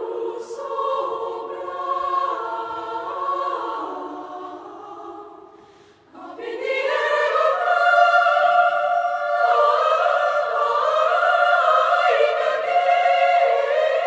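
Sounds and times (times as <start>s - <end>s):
girls' choir singing: 0.0s - 14.0s.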